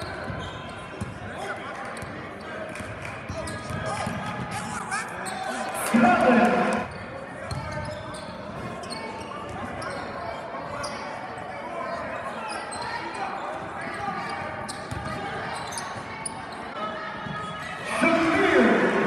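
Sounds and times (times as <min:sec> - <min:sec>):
sneakers squeaking: 0:00.0 - 0:01.2, 0:01.9 - 0:02.5, 0:03.3 - 0:05.7, 0:06.8 - 0:11.2, 0:12.0 - 0:17.8
echoing voices: 0:03.9 - 0:06.9, 0:17.1 - 0:19.0.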